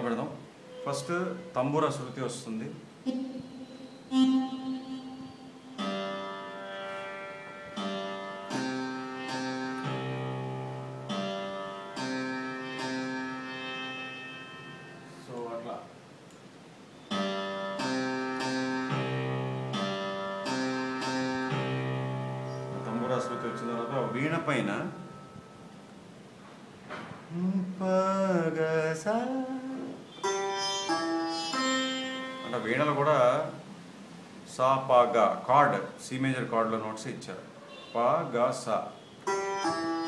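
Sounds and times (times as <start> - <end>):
electronic keyboard melody: 4.0 - 15.6, 17.1 - 26.0, 30.2 - 32.8, 39.3 - 40.0.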